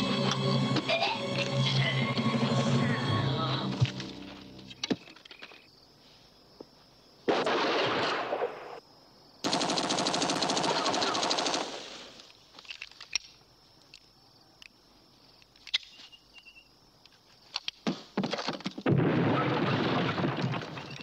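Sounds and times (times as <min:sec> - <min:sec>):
machine-gun fire: 0:09.4 - 0:12.2.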